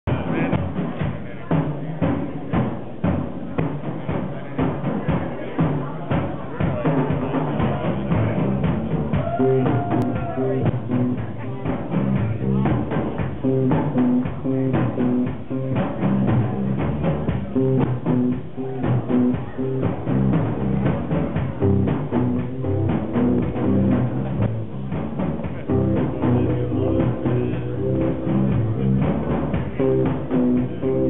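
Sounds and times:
drum kit beat: 0.0s - 31.0s
heavy bass guitar riff: 7.8s - 31.0s.

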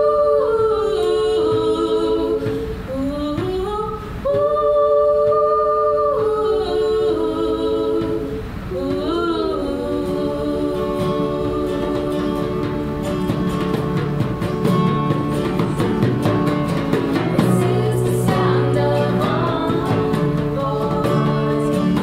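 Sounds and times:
women singing in harmony: 0.0s - 22.0s.

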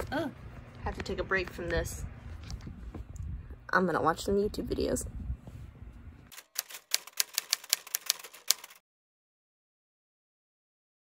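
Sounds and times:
typewriter key clacks: 6.3s - 8.8s.

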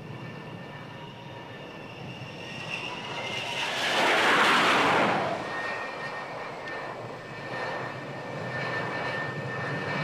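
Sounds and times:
high jet engine whine: 0.0s - 10.0s
jet engines running: 0.0s - 10.0s.

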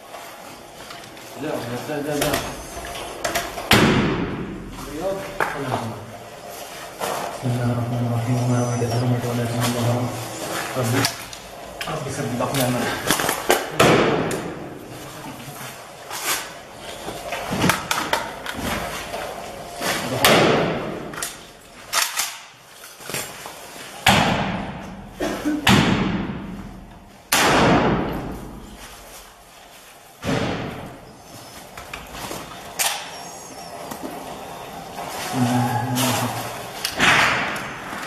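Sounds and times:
gunshots echoing: 27.3s - 28.2s, 37.0s - 37.9s.

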